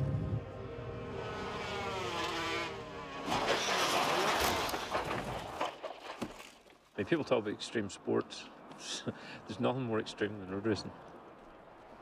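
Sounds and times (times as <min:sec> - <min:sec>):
motorcycle engine passing by: 0:00.0 - 0:04.5.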